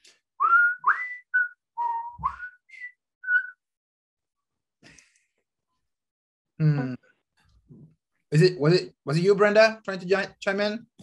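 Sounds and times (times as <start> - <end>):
person whistling a tune: 0.4 - 3.7.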